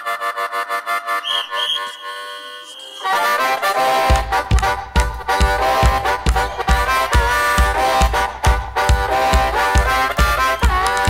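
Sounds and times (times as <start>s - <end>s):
harmonica imitating a train: 0.0s - 11.0s.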